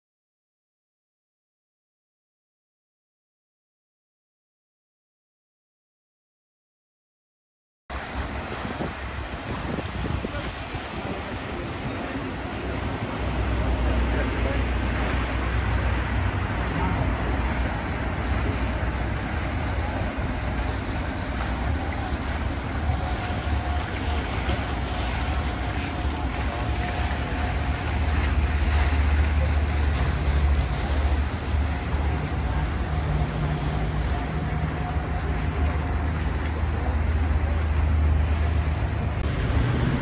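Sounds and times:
boat wake wash: 7.9 - 40.0
faint steady engine tone: 7.9 - 40.0
motorboat engine drone: 7.9 - 40.0
wind rumbling on microphone: 7.9 - 40.0.

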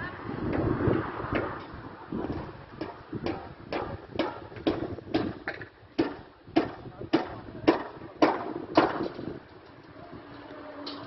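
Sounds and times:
sharp knocks: 1.3 - 9.2.

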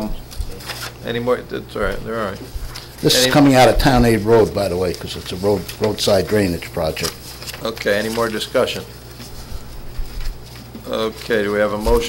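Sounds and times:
person speaking: 0.0 - 9.8
low electrical hum: 0.0 - 12.0
soft low thuds: 3.5 - 4.2, 9.4 - 10.4.

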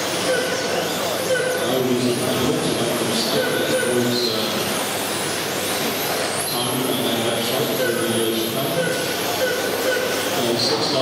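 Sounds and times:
rc car motors whining: 0.0 - 11.0.

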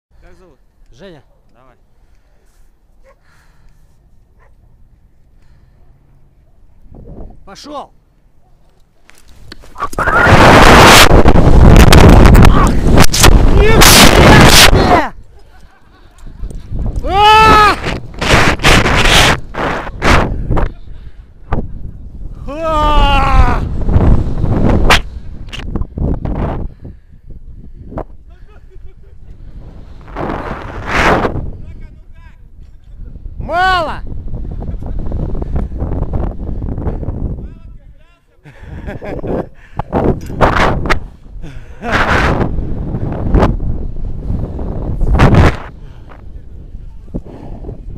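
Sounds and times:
wind rushing over microphone: 6.8 - 7.8, 9.4 - 15.3, 16.2 - 38.0, 38.6 - 47.9
person whooping and yelling: 9.8 - 11.2, 13.5 - 15.2, 17.0 - 17.9, 22.4 - 23.8
person shouting: 12.4 - 12.8, 13.5 - 15.2, 17.0 - 17.9, 22.4 - 23.7, 33.4 - 34.0.

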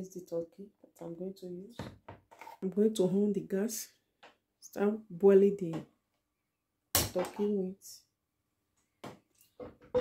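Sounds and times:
voice: 0.0 - 1.9, 2.6 - 3.9, 4.6 - 5.9, 7.1 - 8.0.

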